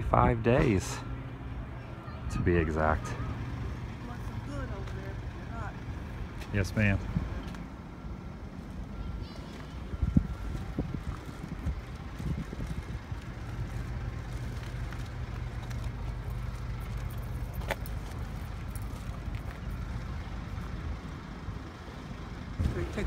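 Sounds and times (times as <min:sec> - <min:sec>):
outdoor street noise: 0:00.0 - 0:23.0
vehicle engine humming: 0:00.0 - 0:23.0.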